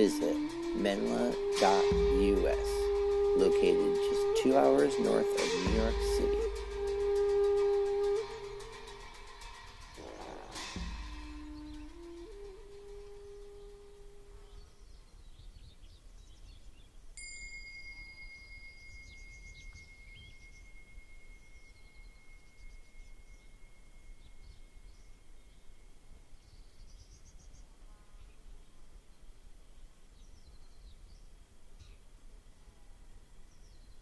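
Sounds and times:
held music note: 0.0 - 14.4
bird chirps: 0.0 - 32.1
high ringing tone: 17.2 - 26.4.

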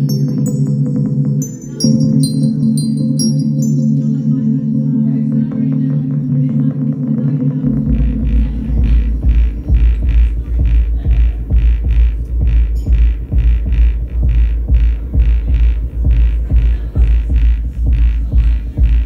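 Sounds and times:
held synth chord: 0.0 - 11.1
heavy pulsing bass beat: 0.0 - 19.0.

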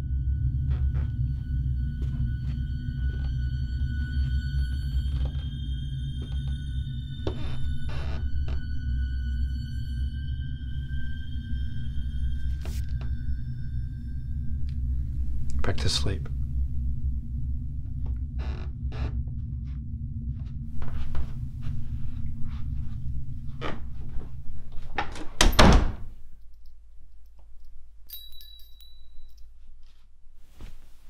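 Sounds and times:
thin high sustained tones: 0.0 - 17.9, 28.1 - 29.6
deep rumbling drone: 0.0 - 25.2
door thudding shut: 25.0 - 26.1.

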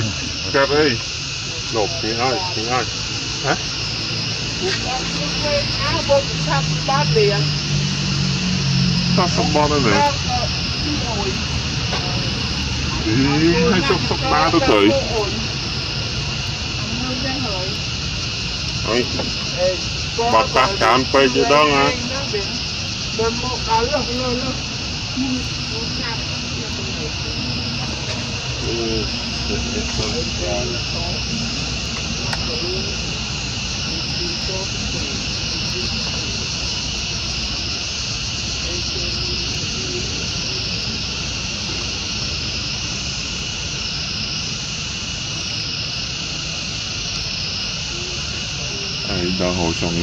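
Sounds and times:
faint voices: 0.0 - 50.0
high pulsing whine: 0.0 - 50.0.

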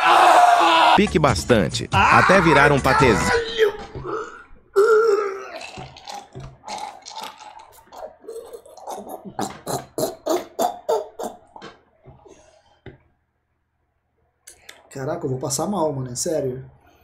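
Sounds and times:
man gagging: 2.0 - 5.9, 7.9 - 11.7.

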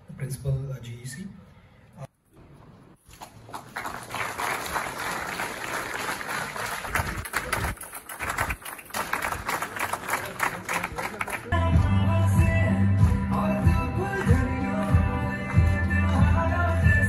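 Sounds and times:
audience applauding: 3.1 - 11.6.

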